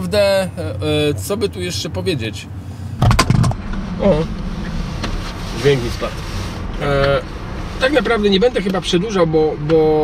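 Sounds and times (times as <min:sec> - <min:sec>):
car engine rumble: 0:00.0 - 0:10.0
road noise inside car: 0:00.0 - 0:10.0
crackling microphone glitch: 0:03.0 - 0:07.2.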